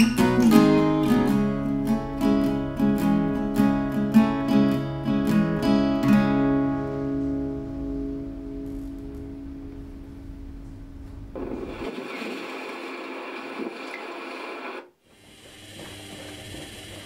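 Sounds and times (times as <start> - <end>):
acoustic guitar chord ringing: 0.0 - 11.7
dense noise: 6.6 - 15.0.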